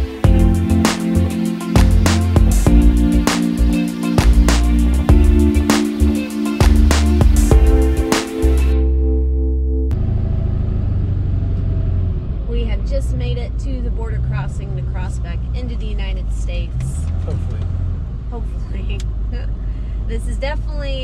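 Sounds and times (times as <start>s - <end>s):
road noise: 0.0s - 9.0s, 9.9s - 21.0s
truck engine drone: 0.0s - 21.0s.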